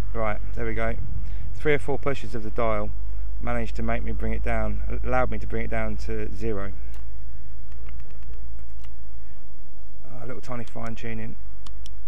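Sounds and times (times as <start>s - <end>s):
low rumble with hum: 0.0s - 12.0s.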